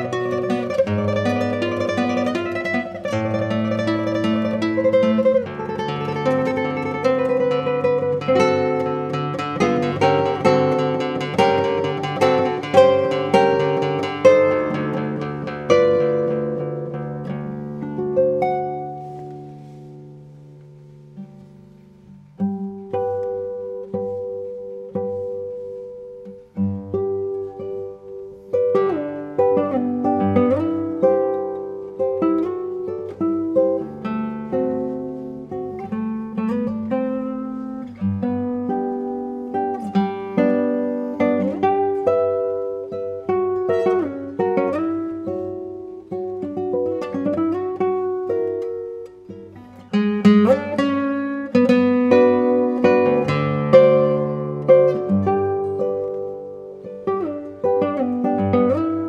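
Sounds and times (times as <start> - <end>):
classical guitar playing: 0.0 - 59.0.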